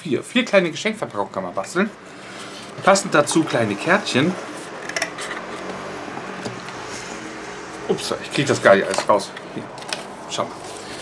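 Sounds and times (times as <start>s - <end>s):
paper rustling and sliding: 2.1s - 2.8s, 9.8s - 11.0s.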